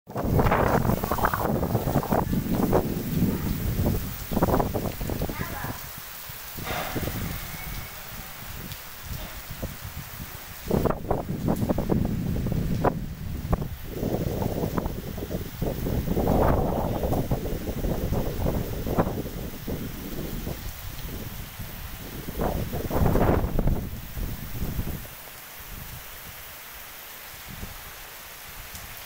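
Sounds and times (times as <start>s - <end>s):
wind buffeting microphone: 0.1s - 26.4s, 27.4s - 29.0s
heavy rain hissing: 0.1s - 29.0s.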